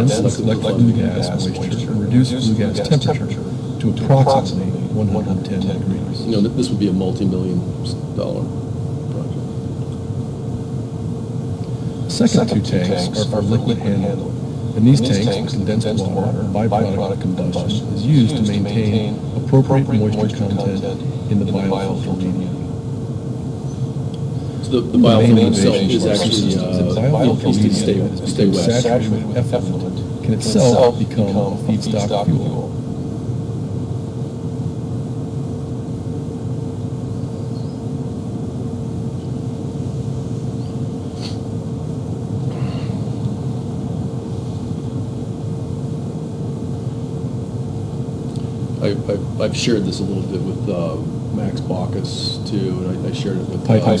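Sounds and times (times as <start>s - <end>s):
faint constant tone: 0.0s - 54.0s
low rumble and hum: 0.0s - 54.0s.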